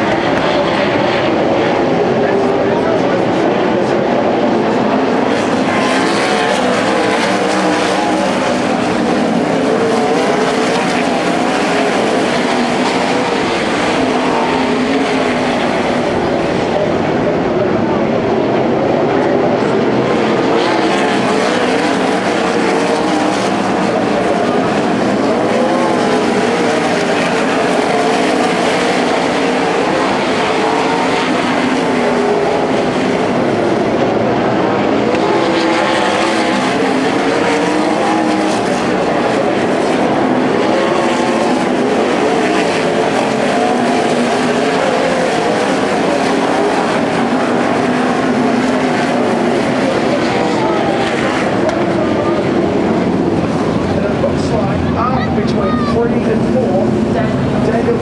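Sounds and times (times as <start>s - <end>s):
racing car engines: 0.0s - 58.0s.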